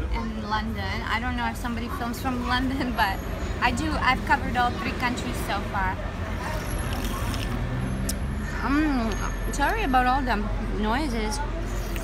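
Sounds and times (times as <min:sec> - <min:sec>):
busy street traffic: 0:00.0 - 0:12.0.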